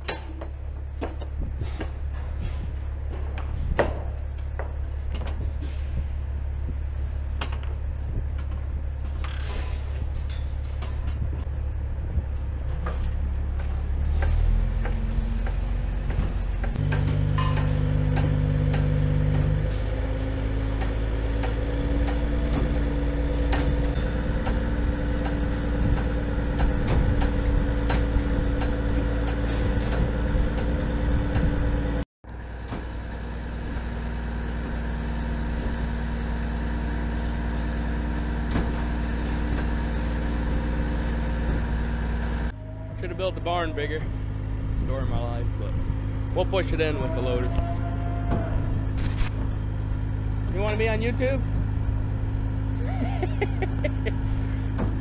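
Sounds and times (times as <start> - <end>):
clanks and knocks: 0.0 - 5.8, 7.4 - 11.5, 12.3 - 31.6, 38.4 - 41.8, 53.9 - 55.0
truck engine running: 0.0 - 55.0.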